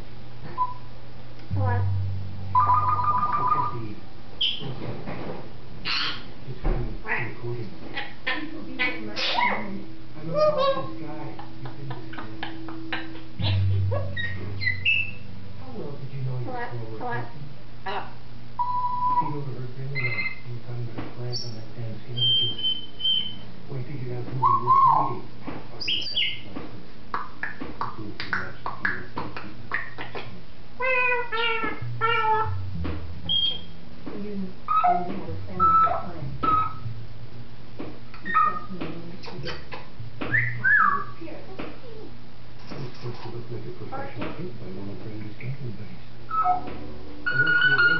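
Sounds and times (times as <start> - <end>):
parrot calling: 2.5 - 3.8, 4.4 - 4.6, 5.8 - 6.3, 7.1 - 11.0, 12.1 - 15.3, 16.5 - 19.3, 20.0 - 20.4, 22.2 - 23.5, 24.4 - 25.2, 25.8 - 26.5, 30.8 - 32.7, 33.3 - 33.8, 34.7 - 36.9, 38.2 - 38.7, 39.5 - 41.2, 46.3 - 47.9
parrot high whistle: 22.2 - 23.4, 33.3 - 33.7, 46.3 - 46.7, 47.3 - 47.9
parrot voice-like call: 30.8 - 32.6, 46.3 - 46.7, 47.3 - 47.9
parrot gliding call: 47.3 - 47.9.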